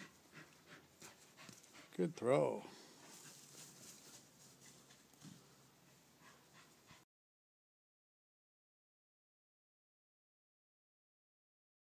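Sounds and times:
faint dog sound: 0.0 - 7.1.

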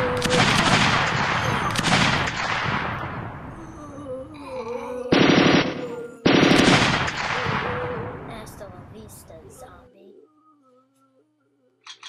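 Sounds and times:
machine-gun fire bursts: 0.0 - 3.4, 5.1 - 8.0.

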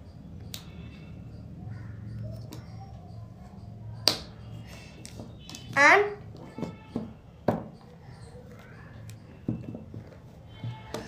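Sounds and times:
plastic pens clicking and tapping: 4.0 - 11.0.

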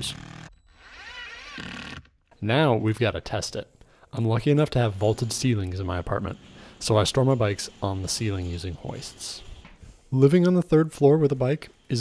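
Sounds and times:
impact driver motor whine: 0.0 - 2.1.

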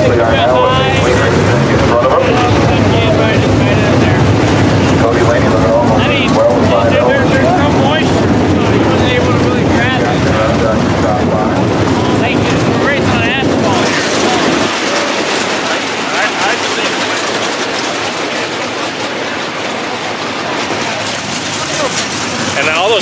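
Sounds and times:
nearby voices: 0.0 - 23.0
race car engines running: 0.0 - 23.0.

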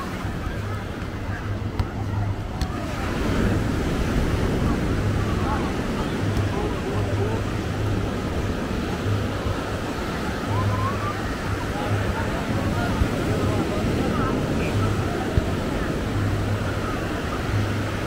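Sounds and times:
crowd voices: 0.0 - 18.0
surf washing onto shore: 0.0 - 18.0.

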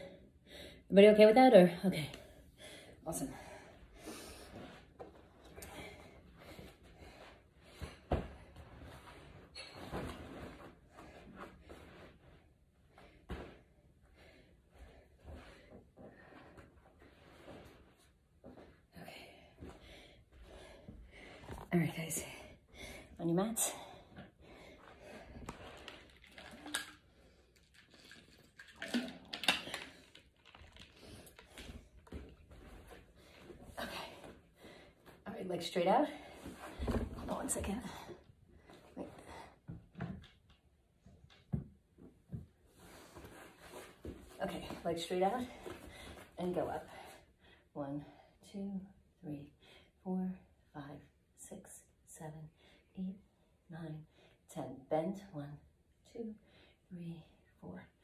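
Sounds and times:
exercise mat rustling: 3.2 - 22.4, 29.9 - 39.8, 42.0 - 47.2.

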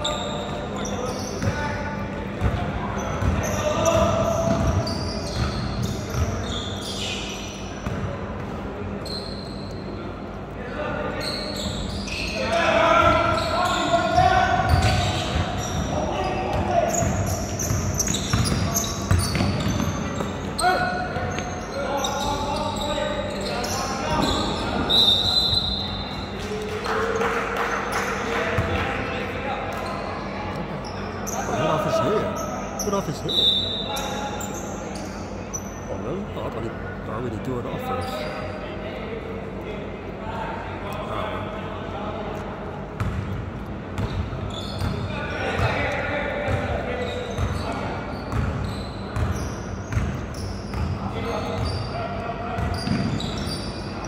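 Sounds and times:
basketball bouncing on court: 1.4 - 6.4, 7.8 - 8.6, 14.6 - 21.6, 43.0 - 43.4, 44.0 - 45.8, 46.4 - 51.8, 52.6 - 53.4.

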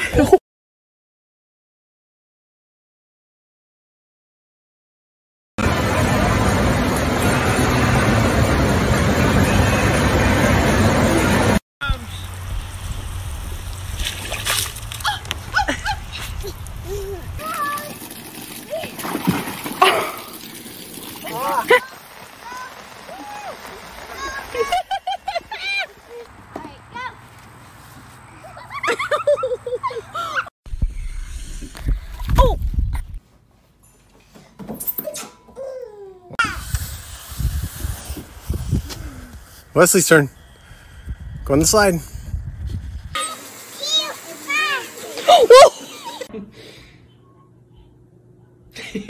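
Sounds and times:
water splashing in paddling pool: 13.6 - 15.5, 17.4 - 26.0, 43.2 - 46.3
child laughing: 15.0 - 17.8, 24.1 - 26.3, 28.3 - 30.5, 44.6 - 46.4.

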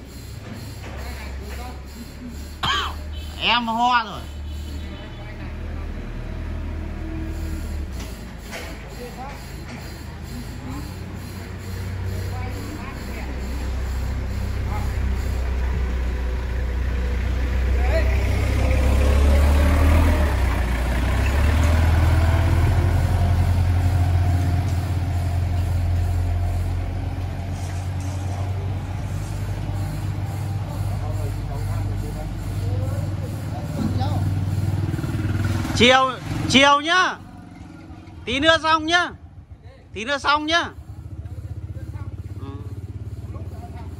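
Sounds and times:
vehicle engine rumbling: 0.0 - 43.9.

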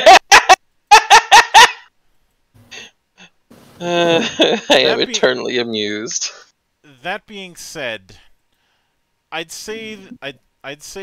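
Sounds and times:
person laughing in bursts: 0.0 - 1.9, 3.8 - 5.1.

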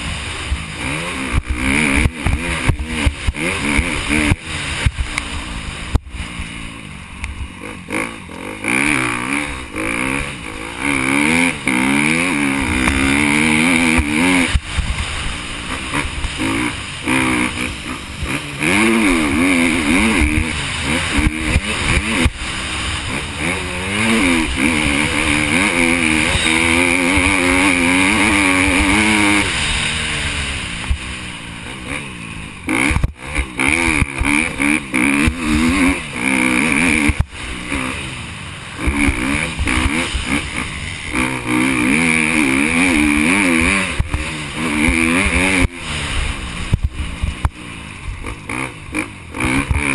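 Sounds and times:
motocross bike engine revving: 0.0 - 49.9.

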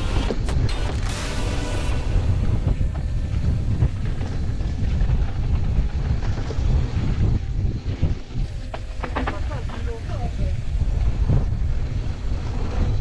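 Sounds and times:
wind rumble on microphone: 0.0 - 13.0
bike tyres rolling over dirt: 1.9 - 13.0.

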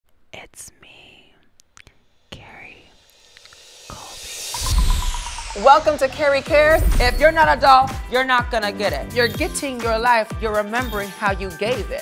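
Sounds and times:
woman whispering: 0.3 - 1.5, 2.3 - 3.0, 3.9 - 4.4
mouth clicks: 1.4 - 5.7.

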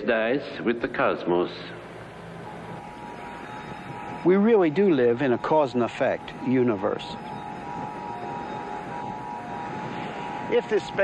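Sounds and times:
steady rushing noise: 0.0 - 11.0
faint held tone: 1.7 - 11.0.

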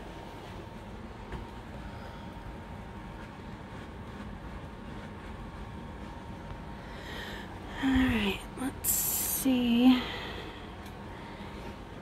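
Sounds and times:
low background rumble and hiss: 0.0 - 12.0.

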